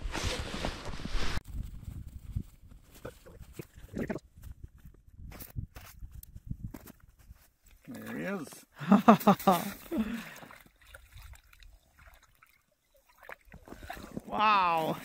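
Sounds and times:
man's drawn-out exclamation: 14.2 - 15.0.

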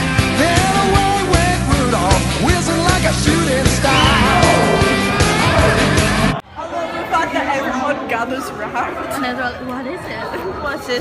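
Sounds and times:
loud music: 0.0 - 6.4
young people chattering: 5.3 - 11.0.

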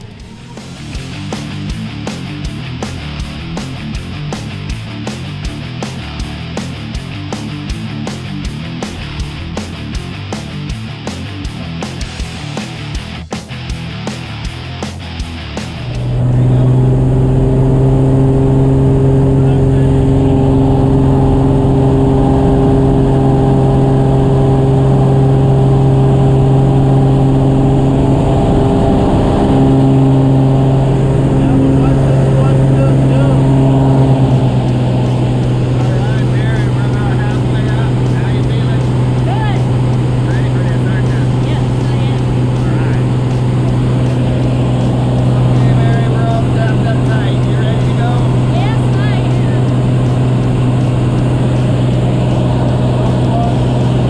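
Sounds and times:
propeller plane engine drone: 0.0 - 54.0.

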